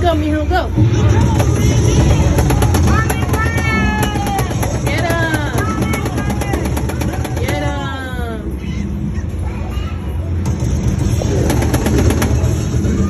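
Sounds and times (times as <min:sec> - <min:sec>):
rapid game gunfire: 0:01.1 - 0:07.9, 0:10.6 - 0:13.0
game music: 0:10.6 - 0:13.0.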